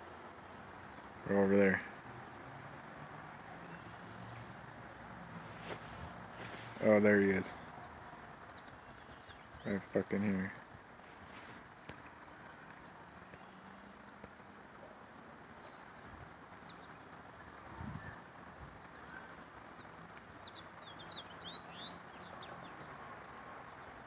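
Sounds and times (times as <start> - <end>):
birds chirping: 0.0 - 24.0.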